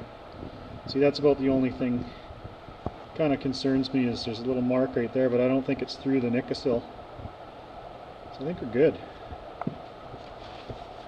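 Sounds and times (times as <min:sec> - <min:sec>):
steady background hum: 0:00.0 - 0:11.0.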